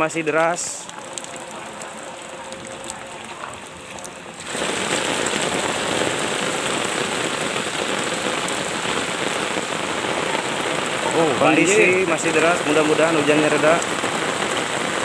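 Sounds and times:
floodwater rushing: 0.0s - 15.0s
heavy rain pouring: 0.0s - 15.0s.

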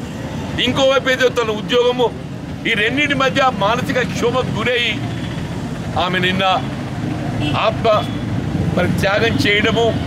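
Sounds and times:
low rumble of street noise: 0.0s - 10.0s
man speaking: 6.0s - 6.8s, 7.6s - 10.0s.

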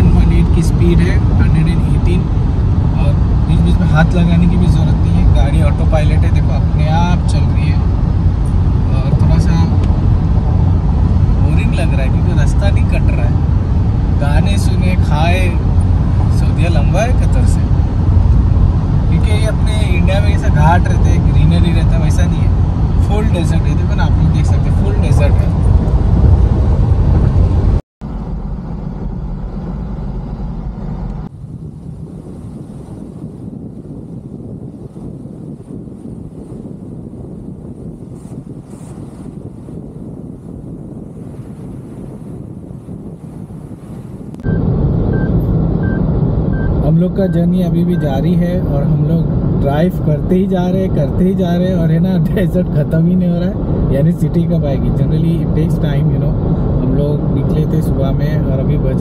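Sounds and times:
man talking: 0.0s - 2.3s, 3.0s - 7.8s, 8.9s - 9.8s, 11.4s - 13.4s, 14.2s - 15.7s, 16.3s - 17.7s, 19.1s - 25.6s, 46.8s - 59.0s
car road and engine rumble: 0.0s - 59.0s
road and wind noise: 0.0s - 59.0s.

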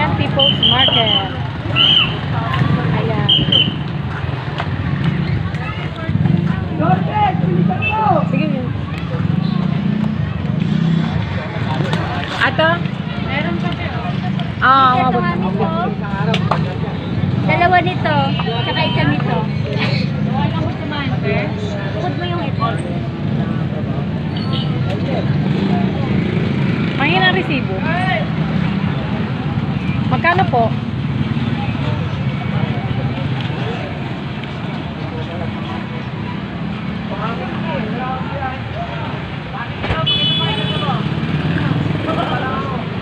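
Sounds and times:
motor traffic rumble: 0.0s - 43.0s
people talking: 0.0s - 43.0s.

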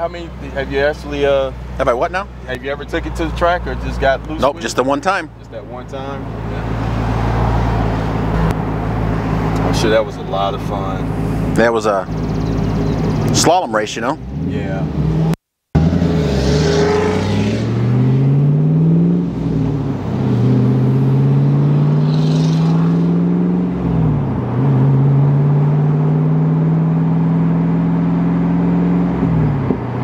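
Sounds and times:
car engine accelerating: 5.4s - 30.0s.

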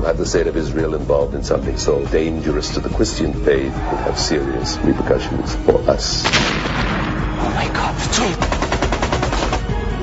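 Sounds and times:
rapid automatic gunfire: 8.2s - 9.7s.

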